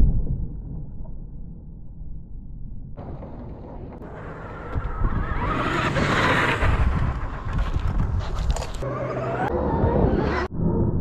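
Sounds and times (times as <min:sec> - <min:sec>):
wind buffeting microphone: 0:03.0 - 0:08.8.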